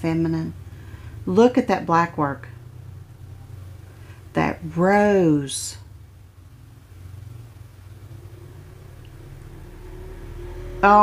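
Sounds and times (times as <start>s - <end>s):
woman speaking: 0.0s - 0.6s, 1.2s - 2.6s, 4.3s - 5.9s
low steady rumble with hum: 0.0s - 11.0s.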